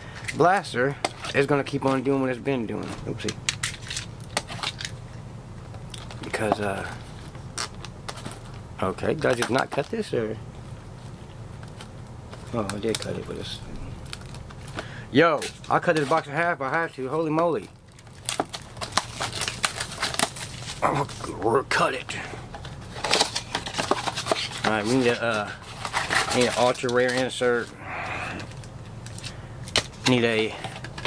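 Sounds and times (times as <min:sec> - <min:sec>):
plastic shrink wrap crinkling: 0:11.0 - 0:14.8, 0:15.4 - 0:21.4, 0:22.6 - 0:27.7.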